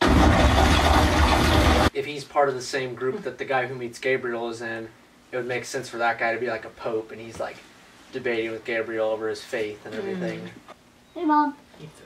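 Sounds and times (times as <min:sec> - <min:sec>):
deep rumble: 0:00.0 - 0:01.9
loud rushing roar: 0:00.0 - 0:01.9.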